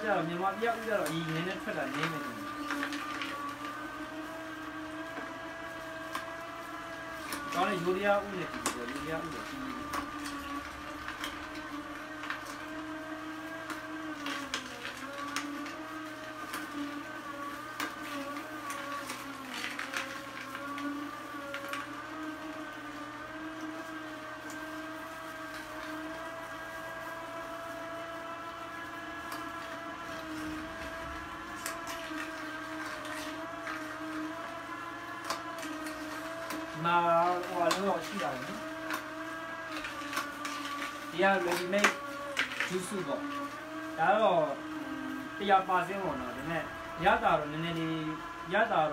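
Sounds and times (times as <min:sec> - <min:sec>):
juicer motor humming: 0:00.0 - 0:48.9
carrots cracking and crunching: 0:29.2 - 0:43.1.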